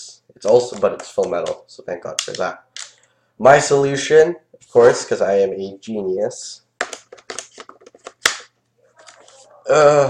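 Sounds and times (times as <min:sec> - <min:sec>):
loud plastic snap: 0:06.8 - 0:08.5.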